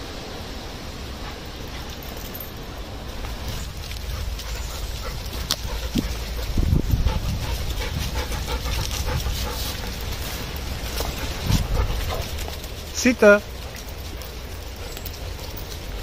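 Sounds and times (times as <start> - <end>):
low rumble from moving camera: 0.1 - 16.0
dogs panting: 1.1 - 16.0
rustling: 1.1 - 16.0.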